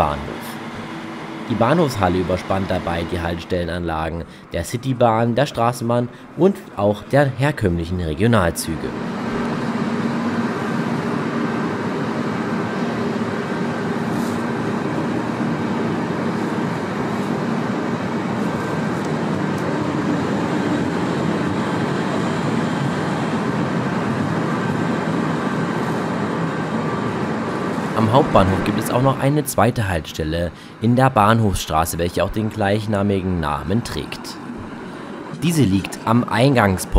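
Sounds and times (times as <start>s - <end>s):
faint steady hum: 0.0s - 36.9s
tram passing close by: 0.0s - 36.9s.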